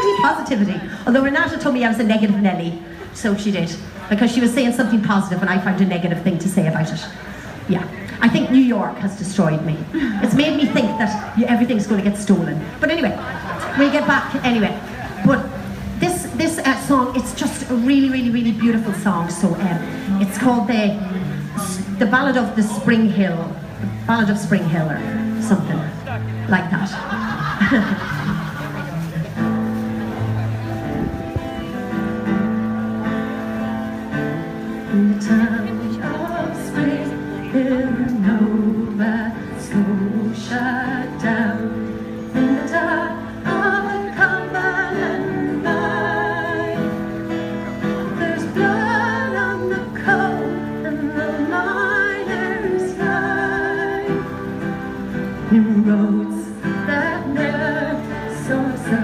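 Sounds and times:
live band playing a ballad: 6.4 - 59.0
strummed acoustic guitar: 14.6 - 59.0.

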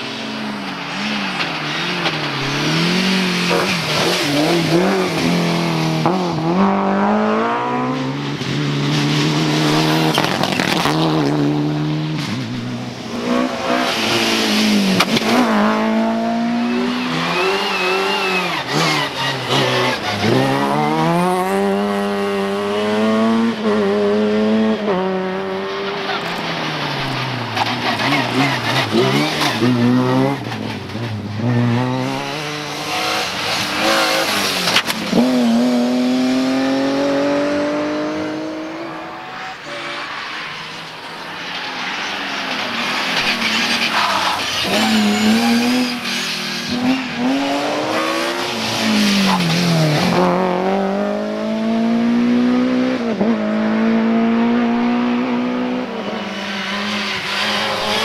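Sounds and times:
rally car engines revving: 0.0 - 58.0.

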